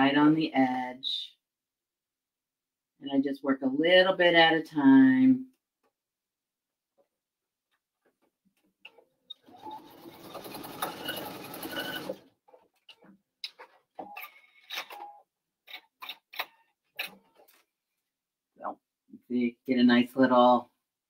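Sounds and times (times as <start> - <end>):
sewing machine stitching: 9.3 - 15.2.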